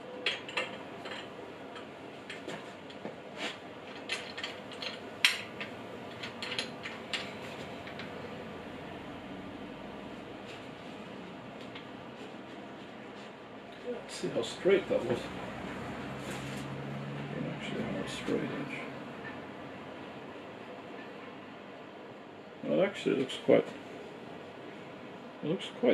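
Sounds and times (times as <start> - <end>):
faint steady hum: 0.0 - 25.9.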